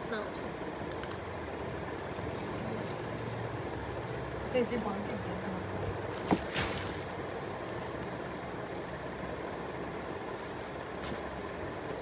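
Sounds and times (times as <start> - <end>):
background rumble and hiss: 0.0 - 12.0
soft rustle: 6.0 - 8.7.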